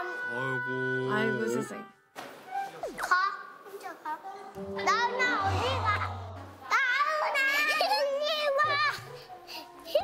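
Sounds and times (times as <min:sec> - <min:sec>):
background music: 0:00.0 - 0:03.2, 0:04.5 - 0:10.0
children's voices: 0:02.8 - 0:10.0.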